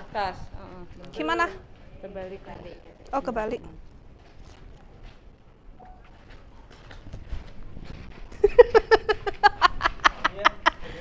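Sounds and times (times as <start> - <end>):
woman laughing: 8.4 - 11.0.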